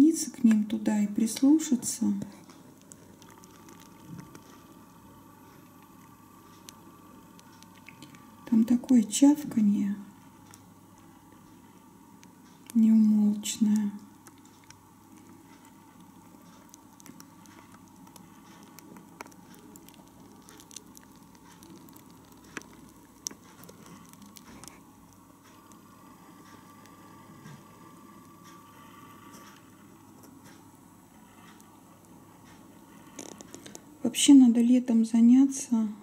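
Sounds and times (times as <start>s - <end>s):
snails wet chomping: 2.4s - 9.5s, 10.1s - 28.4s.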